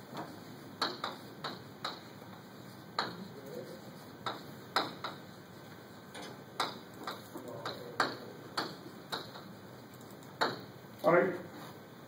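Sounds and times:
chalk tapping on chalkboard: 0:00.1 - 0:05.9, 0:06.6 - 0:10.7
chalk scratching: 0:00.3 - 0:05.9.

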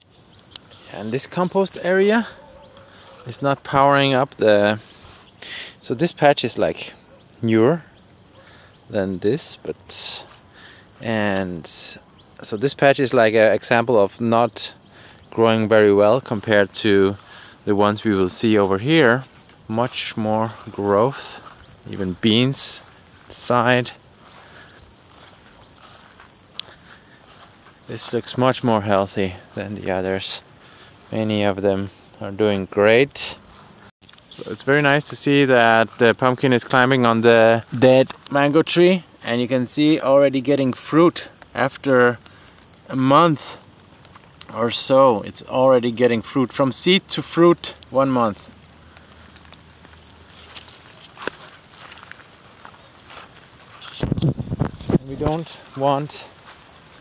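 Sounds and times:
rustling through grass and leaves: 0:00.0 - 0:05.5, 0:06.3 - 0:57.0
insects chirping chorus: 0:00.0 - 0:57.0
faint ticks: 0:00.5 - 0:00.7, 0:25.8 - 0:27.0, 0:42.2 - 0:42.8, 0:48.5 - 0:52.2.

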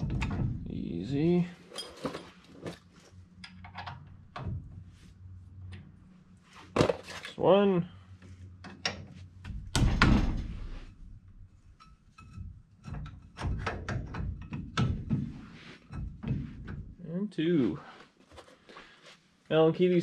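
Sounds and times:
metal parts clinking and knocking: 0:01.7 - 0:02.7.

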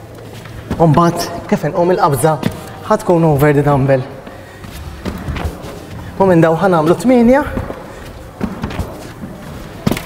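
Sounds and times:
feet thudding on exercise mat: 0:04.5 - 0:06.2, 0:07.4 - 0:10.0.

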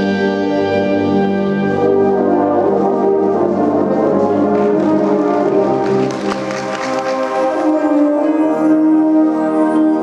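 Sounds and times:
brass band playing sustained chords: 0:00.0 - 0:10.0.

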